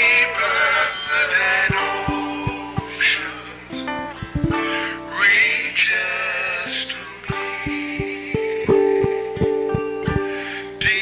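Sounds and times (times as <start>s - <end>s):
acoustic guitar strummed and plucked: 0.0s - 5.9s, 6.7s - 11.0s
person singing loudly: 0.0s - 6.2s, 7.3s - 11.0s.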